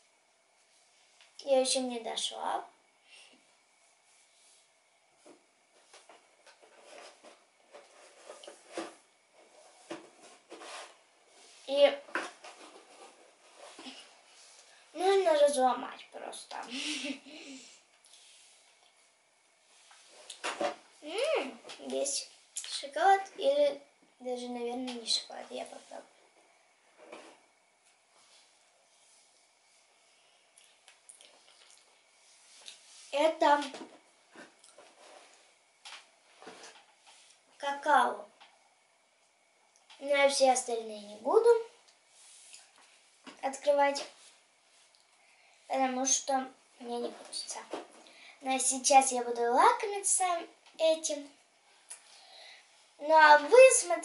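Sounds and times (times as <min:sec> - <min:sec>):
faint chewing: 0:30.5 - 0:32.0, 0:34.4 - 0:34.9.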